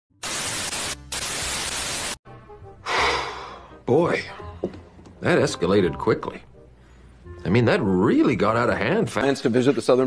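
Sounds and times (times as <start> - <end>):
television static hiss: 0.2 - 2.2
faint music: 3.4 - 10.0.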